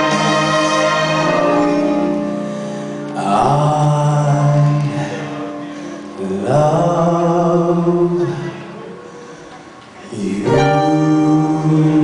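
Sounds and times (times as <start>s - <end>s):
man singing long low note: 3.2s - 5.6s, 10.1s - 12.0s.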